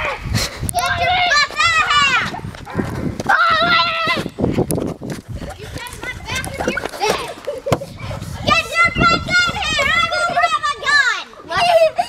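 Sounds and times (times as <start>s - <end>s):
child yelling: 0.8s - 2.4s, 3.3s - 4.3s, 8.4s - 12.0s.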